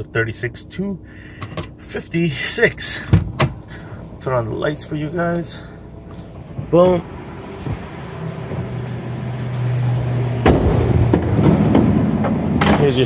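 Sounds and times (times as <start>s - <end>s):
van engine idling: 0.0s - 13.0s
door clunks and rattles: 3.0s - 3.6s, 10.4s - 13.0s
heavy door thud: 10.4s - 13.0s.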